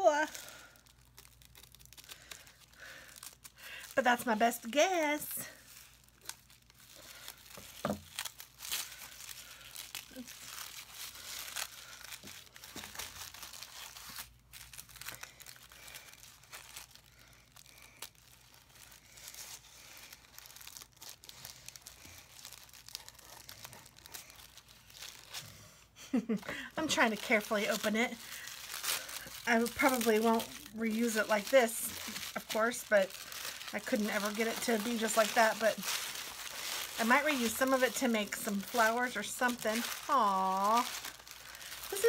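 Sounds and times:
tissue paper crinkling: 0.0s - 42.0s.

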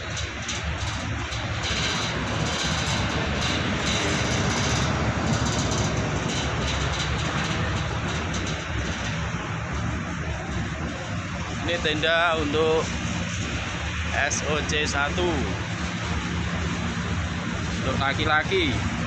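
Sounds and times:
air-conditioner blowers humming: 0.0s - 19.0s.

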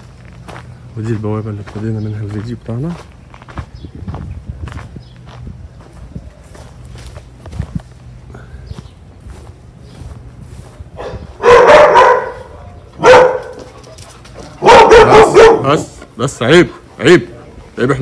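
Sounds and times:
footsteps on dirt path: 0.0s - 14.7s
dogs barking: 10.9s - 16.0s.

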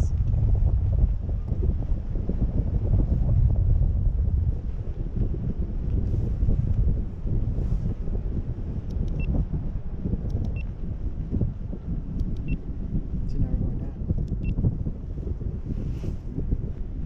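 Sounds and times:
wind buffeting microphone: 0.0s - 17.0s
faint ticks: 10.3s - 10.7s, 12.2s - 12.6s.

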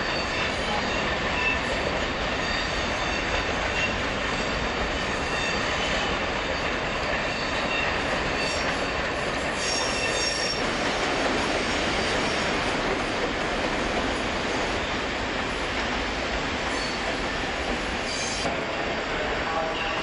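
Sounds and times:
train wheels rumbling on rail: 0.0s - 20.0s
thin wheel squeal: 9.6s - 10.6s.

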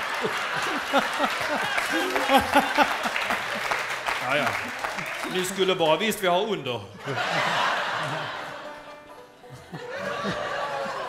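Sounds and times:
audience laughter: 0.0s - 5.2s, 7.0s - 11.0s
banjo and acoustic guitars: 7.9s - 10.8s.

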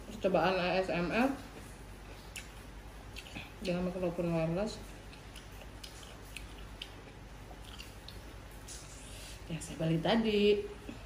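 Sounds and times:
faint chewing: 1.3s - 4.0s, 4.7s - 9.4s
wet mouth clicks: 2.2s - 3.5s, 5.1s - 8.9s.

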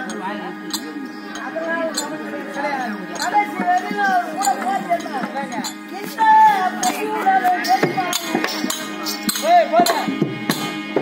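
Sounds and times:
ankle bells jingling: 0.0s - 10.8s
rapid percussion strokes: 0.0s - 11.0s.

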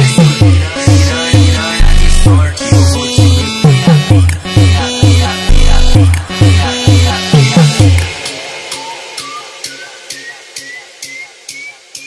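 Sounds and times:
repeating hissing noise hit: 0.6s - 2.7s, 5.5s - 6.4s.

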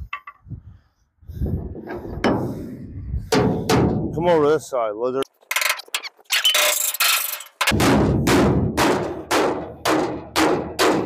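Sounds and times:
hammer striking sheet metal: 3.3s - 4.0s, 7.6s - 11.0s.

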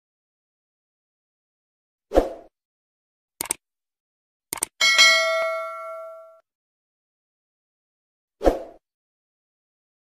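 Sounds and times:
mouse clicks: 3.4s - 3.6s, 4.5s - 4.8s
notification bell ding: 4.8s - 6.4s.

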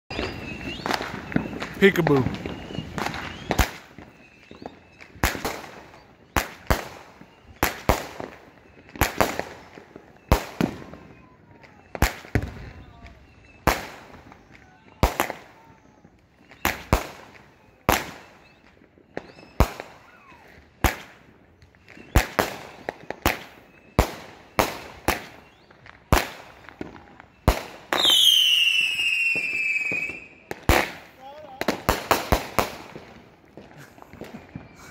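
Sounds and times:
firework falling whistle: 0.1s - 31.0s, 31.6s - 34.9s
firework bangs: 0.1s - 34.9s.

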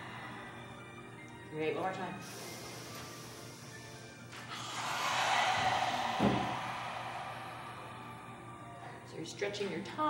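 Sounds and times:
forceful open-mouthed breath out: 2.2s - 8.8s.

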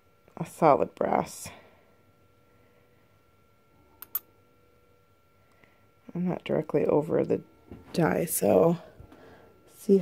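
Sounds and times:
thin steady whine: 0.0s - 10.0s.

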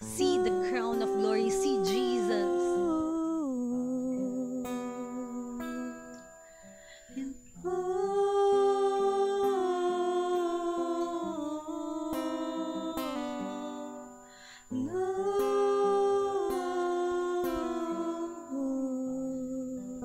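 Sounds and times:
softly plucked acoustic guitar: 0.0s - 20.0s
woman singing long notes: 0.0s - 20.0s.

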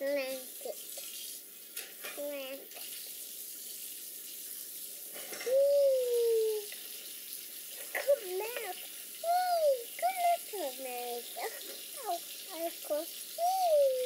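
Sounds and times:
steady background hiss: 4.9s - 14.0s
toddler sing-song vocalizing: 5.3s - 6.8s, 8.0s - 14.0s.

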